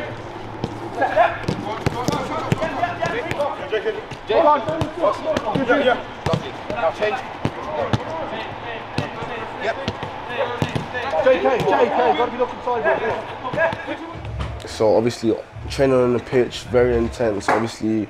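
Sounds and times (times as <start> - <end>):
voices calling out: 0.0 - 17.6
football kick thuds: 1.4 - 8.1, 8.9 - 12.0.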